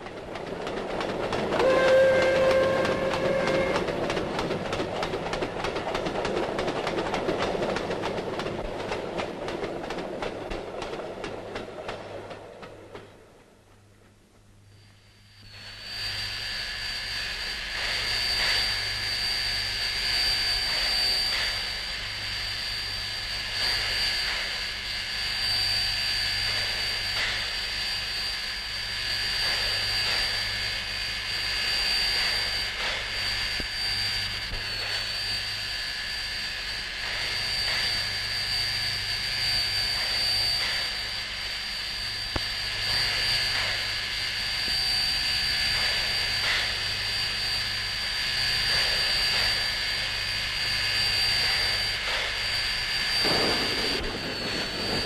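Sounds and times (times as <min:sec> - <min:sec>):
steam hissing with high whistle: 0:00.0 - 0:05.2, 0:14.6 - 0:55.0
steam train passing: 0:00.0 - 0:55.0
steam whistle blast: 0:01.6 - 0:04.0.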